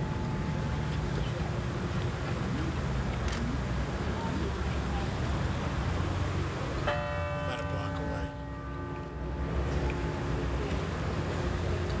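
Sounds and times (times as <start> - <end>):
large church bell ringing: 6.8 - 12.0.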